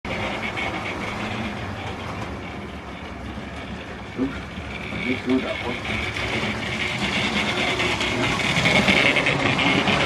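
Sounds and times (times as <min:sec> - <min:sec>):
model train motor whirring: 0:00.1 - 0:10.0
thin high whine: 0:00.1 - 0:10.0.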